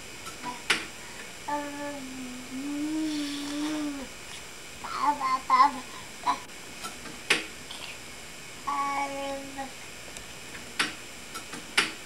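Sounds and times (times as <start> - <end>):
baby vocalizing: 1.5 - 4.1, 4.8 - 6.5.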